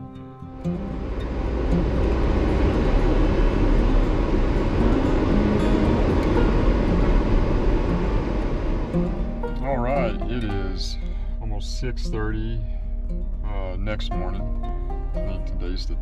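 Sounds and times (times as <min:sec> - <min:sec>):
road noise: 0:00.0 - 0:16.0
car engine driving: 0:00.6 - 0:16.0
wind noise: 0:00.6 - 0:16.0.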